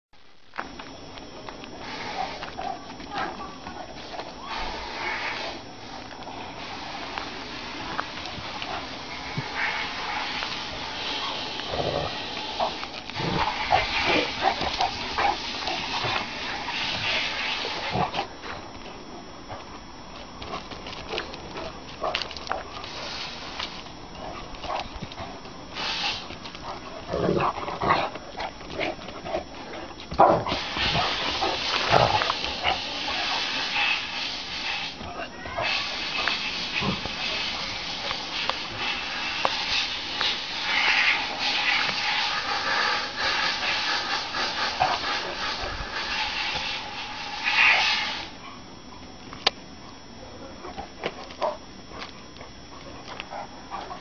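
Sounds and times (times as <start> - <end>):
scuffling noises: 0.3 - 34.1, 49.8 - 54.0
dogs play-fighting vocal sounds: 11.2 - 18.4, 24.2 - 33.8.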